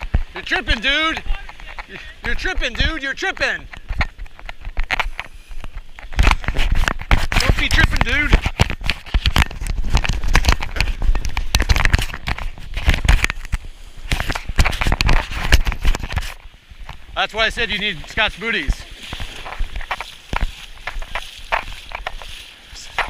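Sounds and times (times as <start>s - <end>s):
person's voice: 7.4s - 8.4s.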